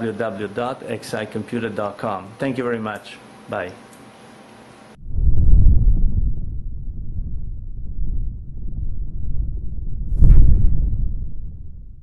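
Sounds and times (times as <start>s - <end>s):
deep low rumbling: 5.0s - 12.0s.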